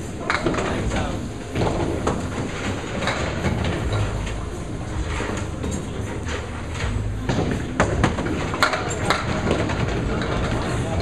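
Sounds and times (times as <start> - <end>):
bowling balls rolling on wooden lanes: 0.0 - 11.0.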